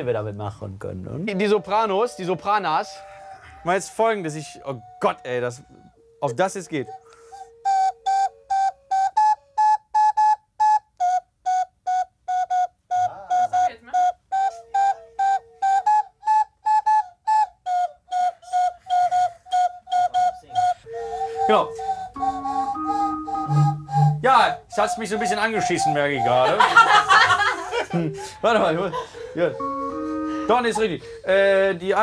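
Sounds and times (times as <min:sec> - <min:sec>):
plastic toy whistles tooting: 0:04.5 - 0:26.4.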